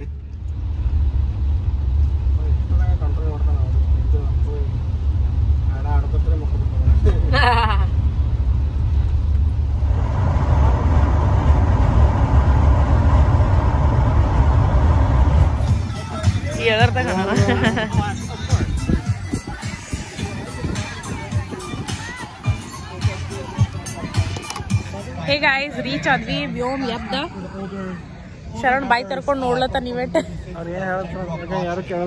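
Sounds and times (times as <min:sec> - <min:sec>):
car interior rumble: 0:00.0 - 0:30.4
faint voices: 0:14.7 - 0:32.0.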